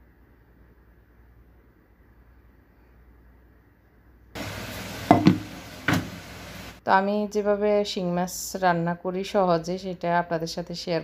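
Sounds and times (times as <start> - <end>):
tap water running into sink: 4.4 - 6.8.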